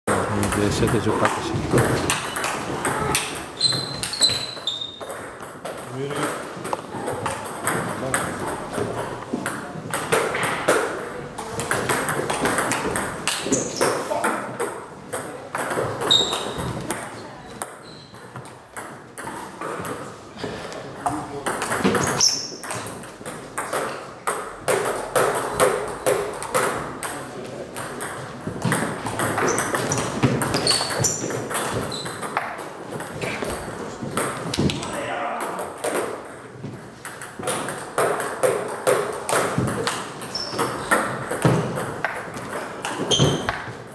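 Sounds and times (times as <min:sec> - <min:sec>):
people talking: 0:00.2 - 0:02.0.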